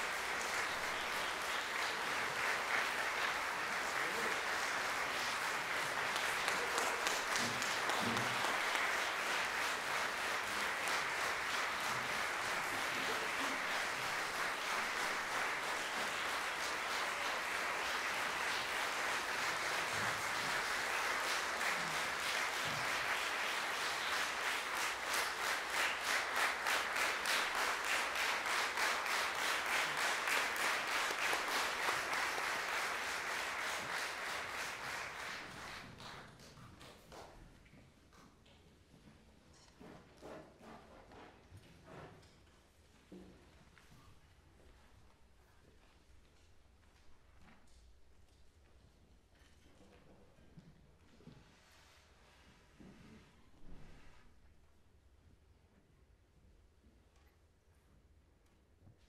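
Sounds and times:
audience applauding: 0.0s - 36.5s
rhythmic unison clapping: 0.0s - 37.4s.

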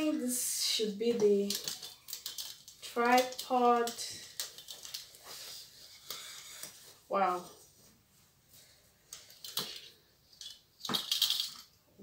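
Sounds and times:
light stand rattling clatter: 9.2s - 11.7s.

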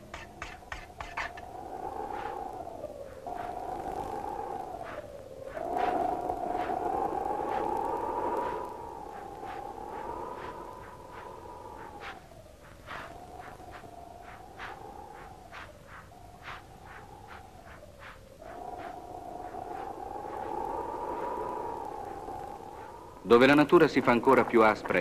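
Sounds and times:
wind howling: 0.0s - 25.0s.

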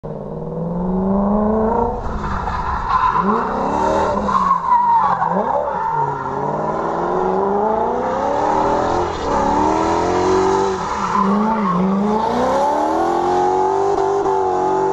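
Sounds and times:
car engine revving: 0.1s - 14.9s.

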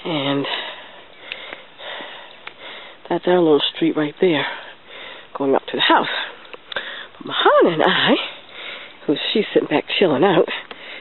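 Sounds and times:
person breathing close to microphone: 0.3s - 3.0s, 4.4s - 5.4s, 6.2s - 7.2s, 8.2s - 9.0s, 10.5s - 11.0s
faint clicks: 6.4s - 6.9s.

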